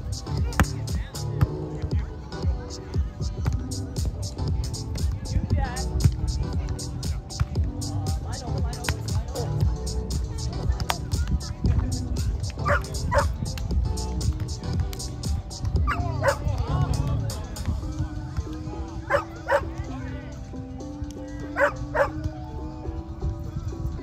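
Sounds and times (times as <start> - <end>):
music: 0.0 - 24.0
dog barking: 12.6 - 13.3, 15.9 - 16.4, 19.1 - 19.7, 21.5 - 22.2.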